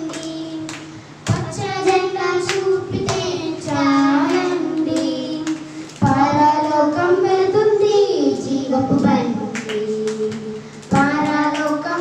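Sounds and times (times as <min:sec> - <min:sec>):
girls singing unaccompanied: 0:00.0 - 0:12.0.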